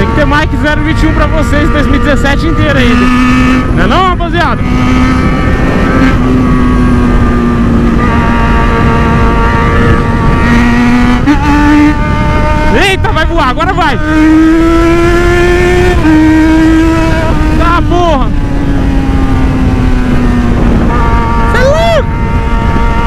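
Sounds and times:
motorcycle engine accelerating: 0.0s - 23.0s
wind rushing over microphone: 0.0s - 23.0s.

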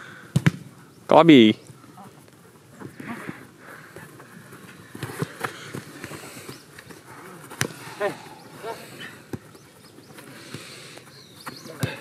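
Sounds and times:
sharp kick of a ball: 0.3s - 0.7s.

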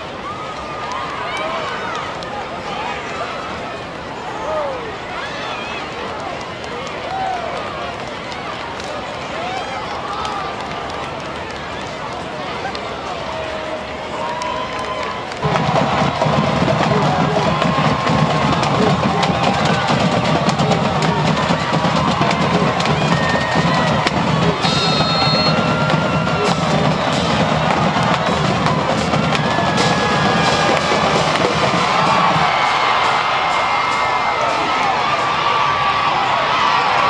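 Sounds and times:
crowd chatter: 0.0s - 37.0s
bass drum beat: 15.4s - 32.6s
drums and band music: 15.4s - 34.8s.

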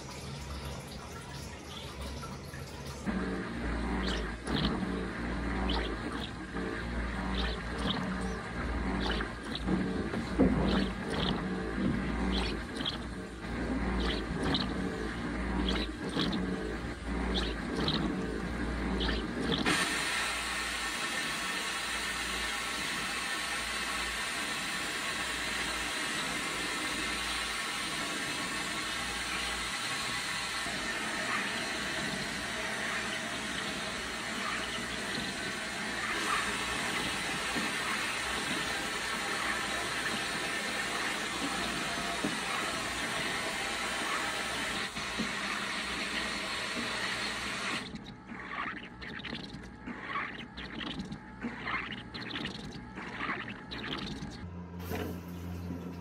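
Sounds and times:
vapor blaster nozzle hissing: 19.0s - 49.4s.

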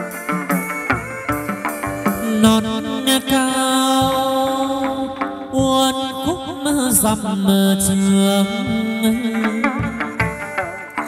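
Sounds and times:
drum strokes: 0.0s - 11.0s.

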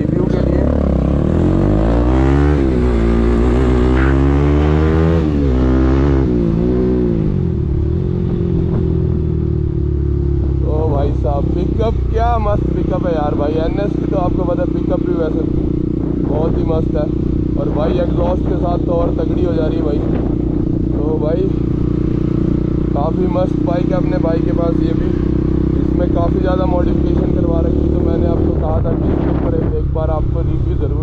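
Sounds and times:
loud motorcycle engine accelerating: 0.0s - 31.0s.

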